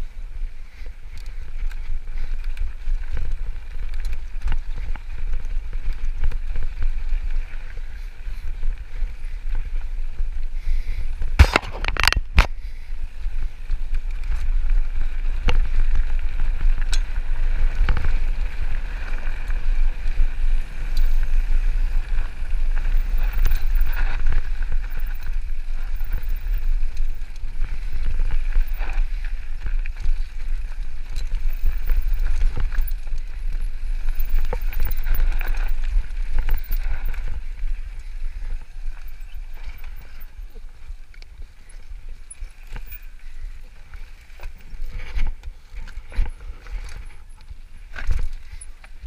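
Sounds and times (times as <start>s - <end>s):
bike rattling: 0.0s - 49.0s
bike tyre noise: 0.0s - 49.0s
wind rumble on microphone: 0.0s - 49.0s.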